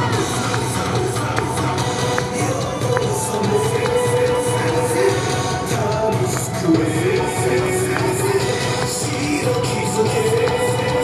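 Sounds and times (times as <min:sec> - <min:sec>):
dance music with pulsing bass beat: 0:00.0 - 0:11.0.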